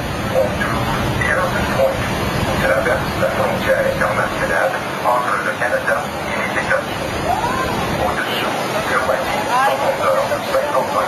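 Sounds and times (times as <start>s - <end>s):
passengers talking and exclaiming: 0.0s - 11.0s
waterfall rushing: 0.0s - 11.0s
wind: 0.0s - 11.0s.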